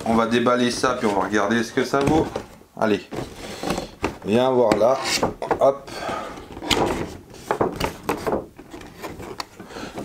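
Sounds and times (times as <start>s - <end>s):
cardboard and plastic rubbing: 0.0s - 10.0s.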